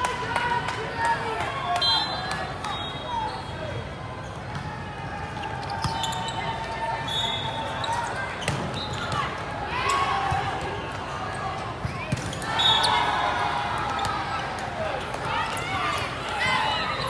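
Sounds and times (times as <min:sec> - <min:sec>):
murmur of voices: 0:00.0 - 0:17.0
sneakers squeaking on court: 0:02.4 - 0:09.4.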